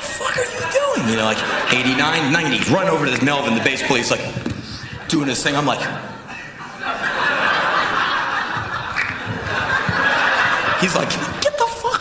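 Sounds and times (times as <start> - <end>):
audience laughing: 0.6 - 4.2, 4.8 - 12.0.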